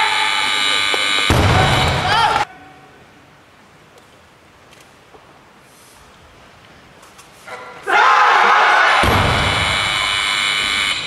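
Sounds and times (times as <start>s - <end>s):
loud sustained shouting: 0.0s - 0.8s, 1.5s - 2.8s, 7.8s - 10.5s
person shouting: 2.0s - 2.9s.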